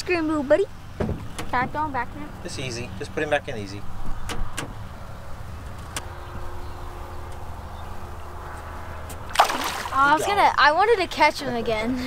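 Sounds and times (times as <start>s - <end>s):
low motor hum: 3.9s - 10.2s.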